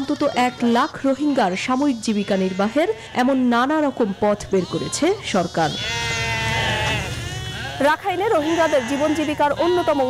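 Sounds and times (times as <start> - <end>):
sheep bleating: 0.0 - 10.0.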